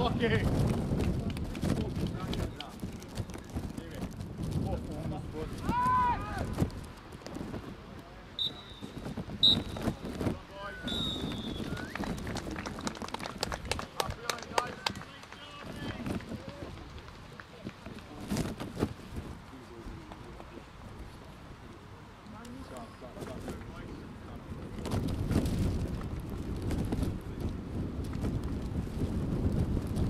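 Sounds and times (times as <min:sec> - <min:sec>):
referee's whistle blasts: 0:08.4 - 0:09.8, 0:10.7 - 0:11.9.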